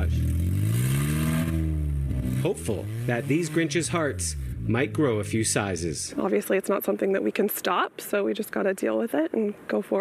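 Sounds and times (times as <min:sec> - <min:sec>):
loud car engine revving: 0:00.0 - 0:06.1.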